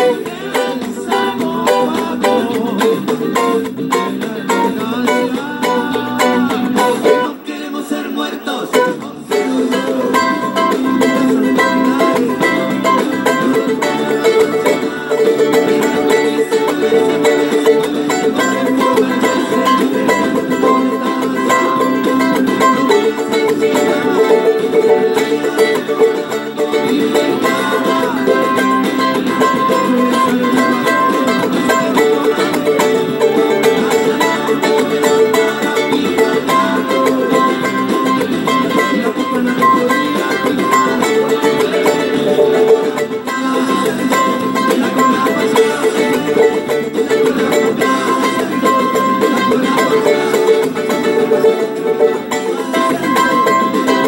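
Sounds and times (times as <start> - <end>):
charango strummed in rhythm: 0.0 - 54.0.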